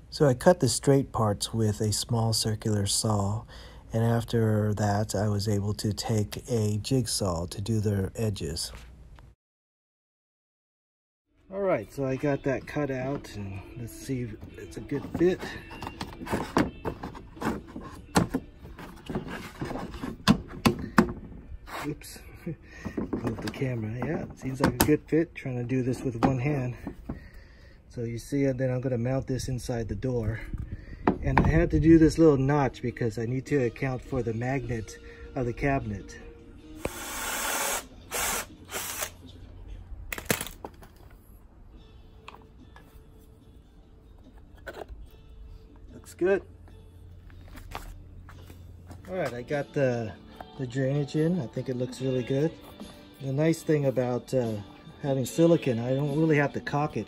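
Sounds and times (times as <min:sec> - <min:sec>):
cordless drill running: 0:36.8 - 0:39.2.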